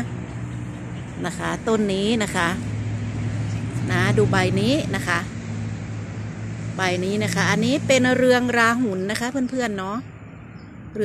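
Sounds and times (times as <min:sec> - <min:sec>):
woman speaking: 0:01.2 - 0:02.7, 0:03.8 - 0:05.3, 0:06.8 - 0:10.1.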